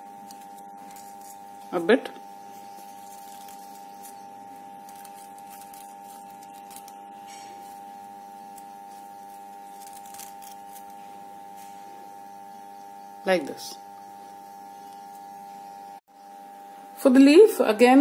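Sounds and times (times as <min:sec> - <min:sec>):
crepe paper rustling: 0:00.0 - 0:11.9
high-pitched background hum: 0:00.0 - 0:18.0.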